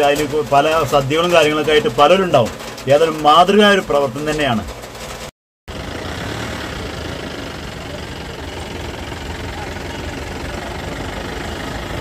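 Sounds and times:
truck engine idling: 5.7 - 12.0.

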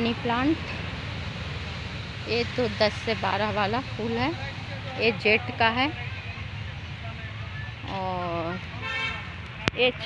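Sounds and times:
road traffic rumble: 0.0 - 10.0
vehicle horn: 8.8 - 9.4.

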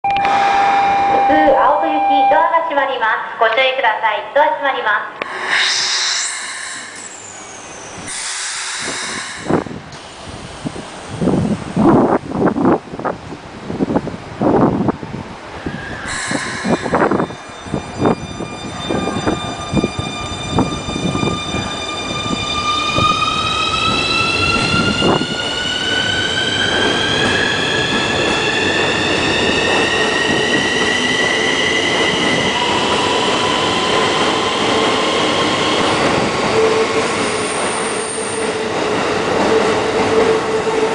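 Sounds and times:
train inverter and motors whining: 5.2 - 12.7, 15.6 - 38.8.

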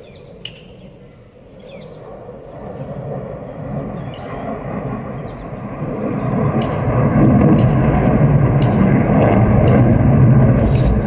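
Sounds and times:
jet engines rumbling: 0.0 - 11.0.

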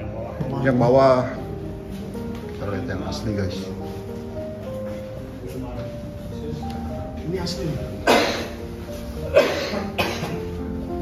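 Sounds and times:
background music: 0.0 - 11.0
person coughing: 8.0 - 8.6, 9.2 - 10.5.

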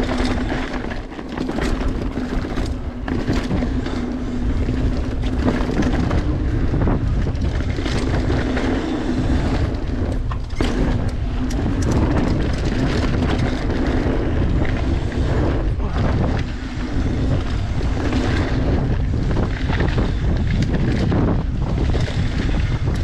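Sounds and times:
bike rattling and clicking: 0.0 - 23.0
bike tyres rolling on dirt: 0.0 - 23.0
wind on microphone: 0.0 - 23.0.

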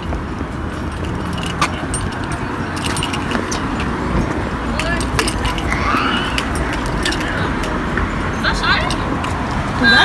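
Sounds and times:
keys jingling: 0.0 - 7.8
low traffic rumble: 0.0 - 10.0.

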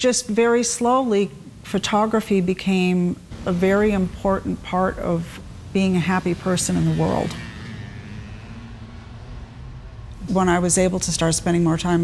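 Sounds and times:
traffic rumble: 1.5 - 12.0.

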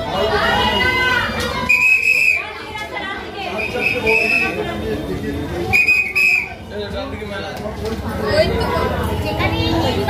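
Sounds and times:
crowd chatter: 0.0 - 10.0
shrill whistle blasts: 1.6 - 2.5, 3.5 - 4.6, 5.7 - 6.6.

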